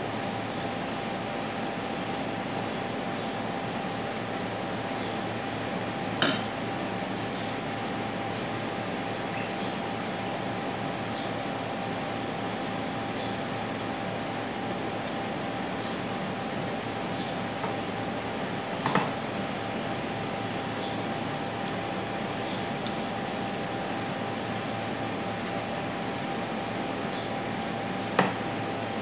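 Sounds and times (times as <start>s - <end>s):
mechanical hum: 0.0s - 29.0s
soft clicks of eating: 21.6s - 23.0s, 23.9s - 24.8s, 25.4s - 25.6s.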